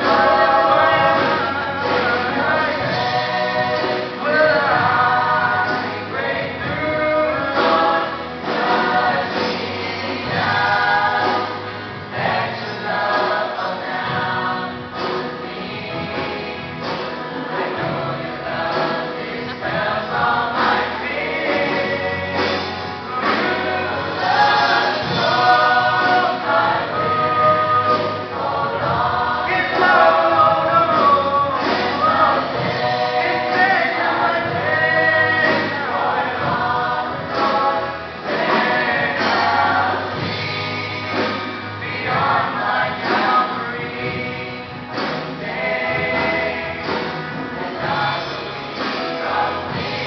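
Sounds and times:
youth choir singing: 0:00.0 - 0:50.0.

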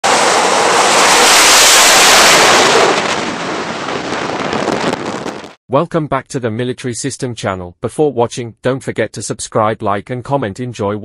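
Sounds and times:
jet engines at full power: 0:00.0 - 0:05.5.

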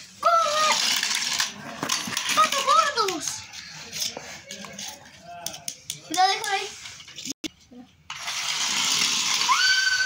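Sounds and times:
toy car clattering on tile floor: 0:00.2 - 0:06.6, 0:08.1 - 0:10.0.

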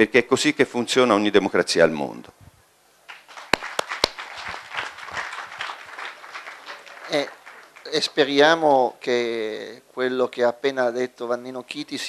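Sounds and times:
audience applauding: 0:03.1 - 0:08.6.

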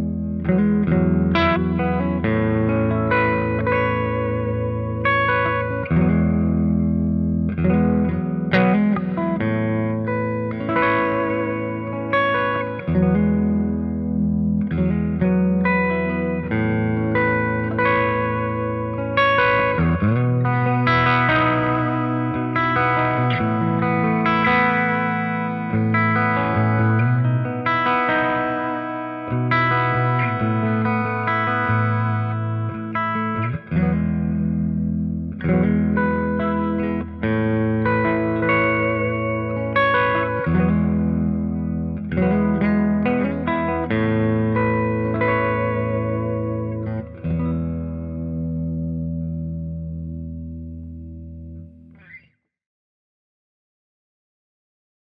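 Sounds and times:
electric guitar playing: 0:00.0 - 0:52.3.

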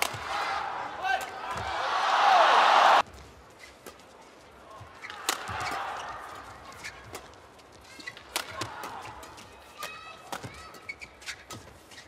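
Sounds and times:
rackets hitting shuttlecock: 0:00.0 - 0:00.4, 0:05.0 - 0:07.3, 0:08.0 - 0:11.8
shoe squeaks on court: 0:03.5 - 0:04.0, 0:06.7 - 0:07.2, 0:07.8 - 0:08.3, 0:10.5 - 0:12.0.

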